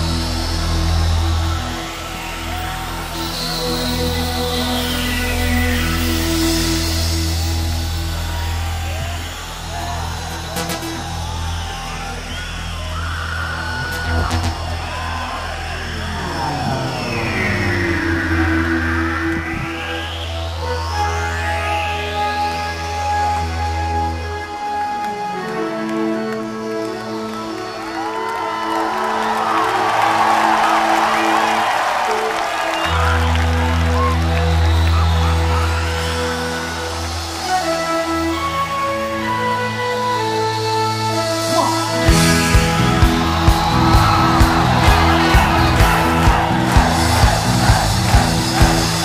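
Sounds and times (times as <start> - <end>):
audience cheering and whooping: 0.0 - 5.4, 7.3 - 22.2, 24.2 - 39.4, 41.4 - 49.0
electronic keyboard chords: 0.0 - 49.0
live band music: 32.0 - 49.0.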